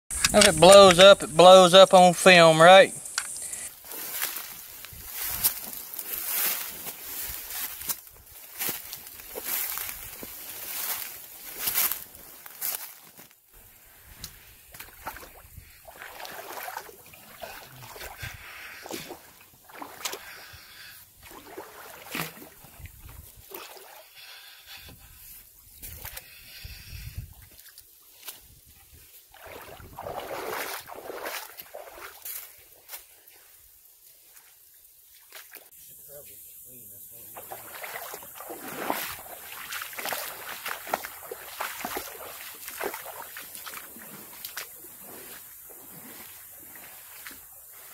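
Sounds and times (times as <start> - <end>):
brush rustling and crackling: 3.0 - 20.0, 37.4 - 47.9
water sloshing and splashing: 3.8 - 12.6, 13.6 - 20.6, 21.2 - 24.2, 27.3 - 33.5, 37.3 - 47.9.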